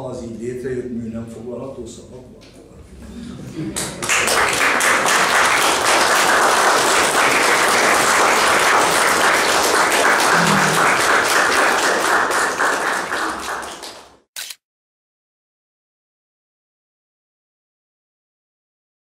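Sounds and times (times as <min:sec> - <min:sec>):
audience applauding: 0:03.8 - 0:14.3.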